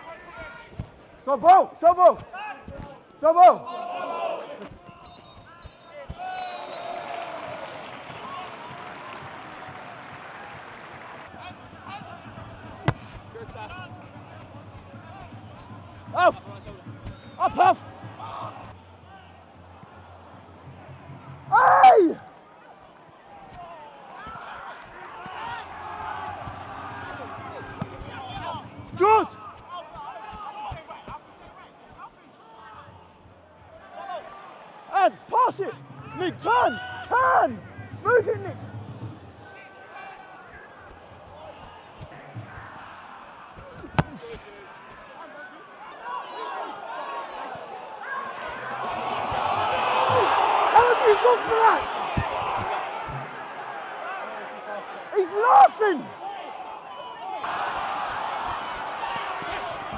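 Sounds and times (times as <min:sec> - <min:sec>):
players shouting: 0:00.0 - 0:20.3, 0:23.3 - 0:33.1, 0:39.4 - 0:59.9
murmur of spectators: 0:00.0 - 0:59.9
ball being kicked: 0:12.2 - 0:17.3, 0:24.2 - 0:31.2, 0:43.6 - 0:44.6, 0:51.4 - 0:53.3.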